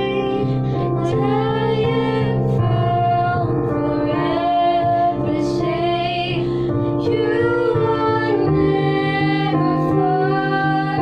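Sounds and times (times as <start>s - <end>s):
girls singing: 0.0s - 11.0s.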